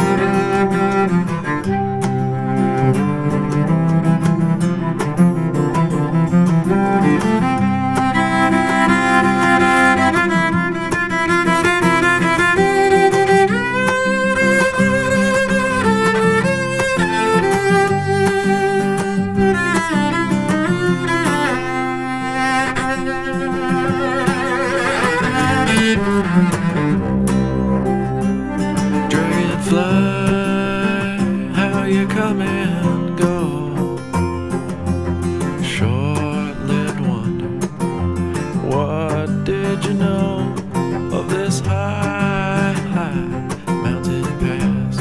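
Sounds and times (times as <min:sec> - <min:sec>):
bowed cello melody: 0:00.0 - 0:45.0
low bass line: 0:25.4 - 0:31.5.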